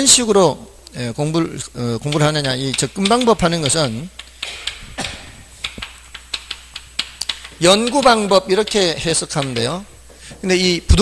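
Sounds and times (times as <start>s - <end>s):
chalk tapping on blackboard: 2.0s - 10.5s.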